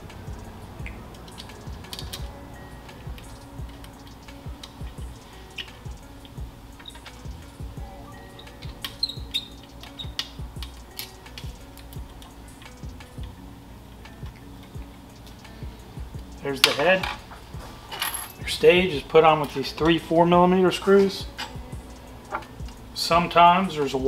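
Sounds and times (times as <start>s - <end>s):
soft background music: 0.0s - 24.0s.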